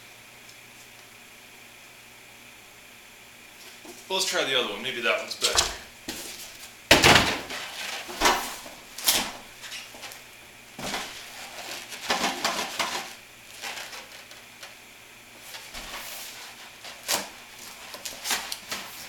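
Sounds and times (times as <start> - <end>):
cardboard rustling: 10.8 - 14.4, 15.4 - 19.0.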